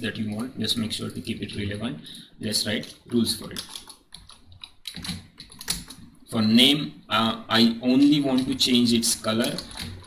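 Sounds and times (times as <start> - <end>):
typing on computer keyboard: 2.8 - 6.1, 8.0 - 10.0.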